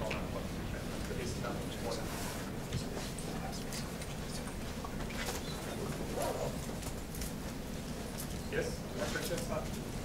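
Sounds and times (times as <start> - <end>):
low hall hum: 0.0 - 10.0.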